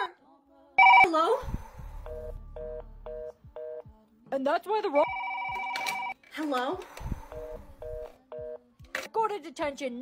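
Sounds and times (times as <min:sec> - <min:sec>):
telephone busy tone beeps: 0:00.8 - 0:01.1, 0:05.0 - 0:06.2.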